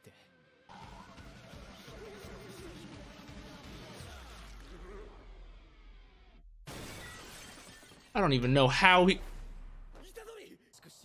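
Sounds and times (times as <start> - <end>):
glass shattering: 6.7 - 8.2.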